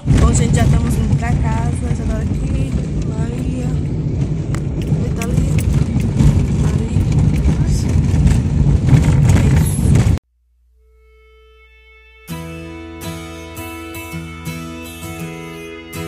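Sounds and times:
car cabin road and engine rumble: 0:00.0 - 0:10.2.

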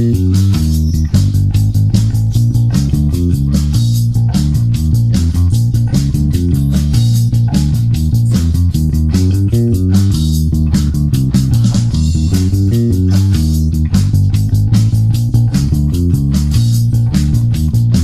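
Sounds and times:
drum kit track: 0:00.0 - 0:18.0
electric bass fingerstyle line: 0:00.0 - 0:18.0.

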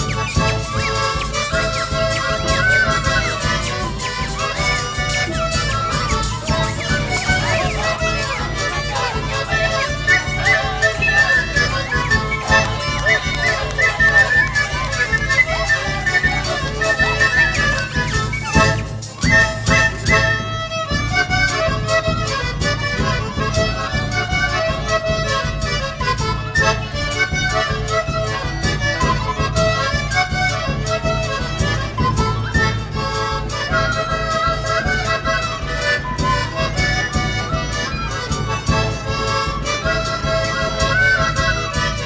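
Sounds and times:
folk dance music with accordion: 0:00.0 - 0:42.0.

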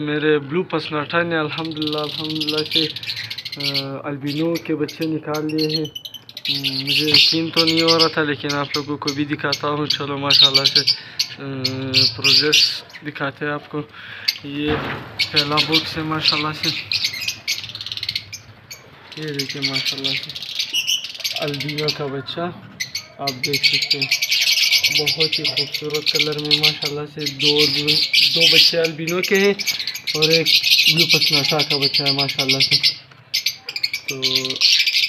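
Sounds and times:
lovebirds chattering: 0:00.0 - 0:35.0.

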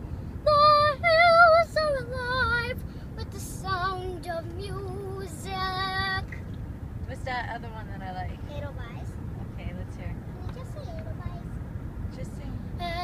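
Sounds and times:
car road rumble: 0:00.0 - 0:13.0
girl singing with vibrato: 0:00.4 - 0:06.3, 0:12.8 - 0:13.0.

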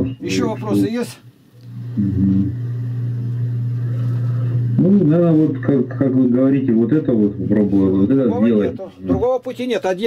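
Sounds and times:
low hum on call line: 0:00.0 - 0:09.2.

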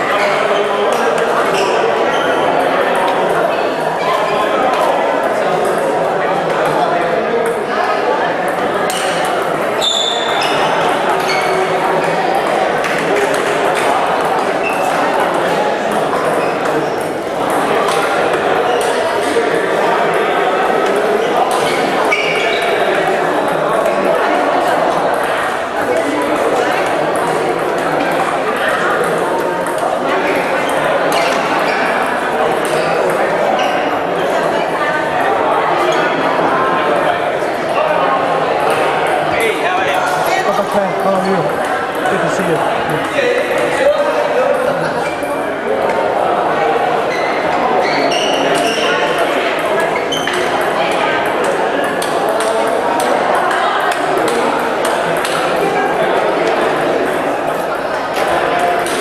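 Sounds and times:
echoing chatter: 0:00.0 - 0:59.0
voices in a hall: 0:00.0 - 0:59.0.

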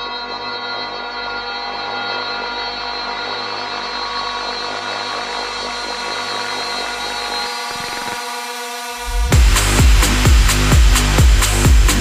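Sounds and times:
pulsing bass line: 0:00.0 - 0:12.0
sustained synthesizer chord: 0:00.0 - 0:12.0.

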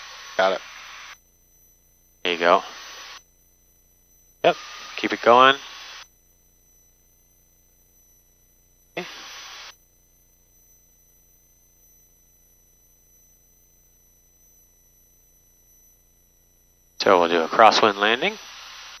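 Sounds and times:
intercom hiss burst: 0:00.0 - 0:01.2, 0:02.3 - 0:03.2, 0:04.4 - 0:06.0, 0:09.0 - 0:09.7, 0:17.0 - 0:19.0.

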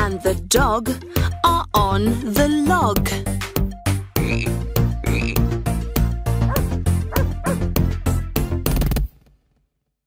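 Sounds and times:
cartoon frog croaks: 0:04.2 - 0:05.5.

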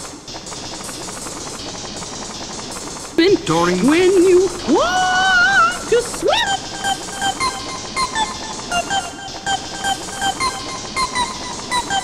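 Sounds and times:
layered pitch-shifted soundtrack: 0:00.0 - 0:12.0.

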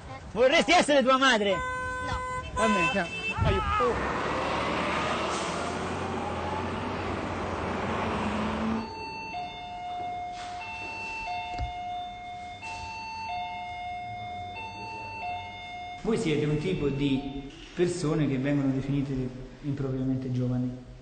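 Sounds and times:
street traffic noise: 0:00.0 - 0:21.0
bus passing: 0:01.7 - 0:11.2.

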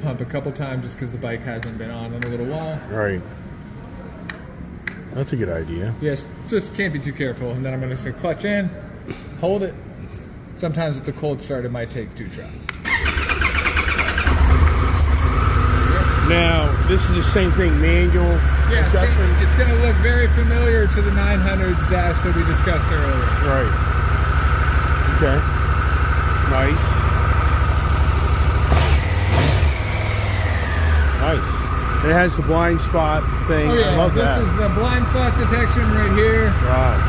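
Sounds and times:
electric starter cranking engine: 0:12.8 - 0:17.4
motorcycle engine idling: 0:13.0 - 0:29.2, 0:29.8 - 0:37.0.

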